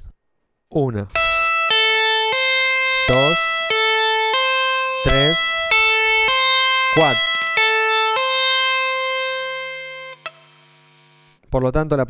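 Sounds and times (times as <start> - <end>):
electric guitar tapping notes: 1.1 - 11.3.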